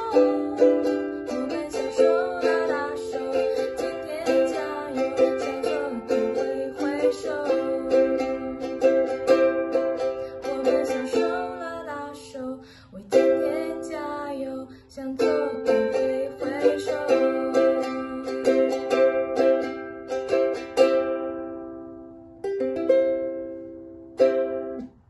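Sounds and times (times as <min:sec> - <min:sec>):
woman singing: 0:00.0 - 0:19.7
ukulele strumming: 0:00.0 - 0:25.0.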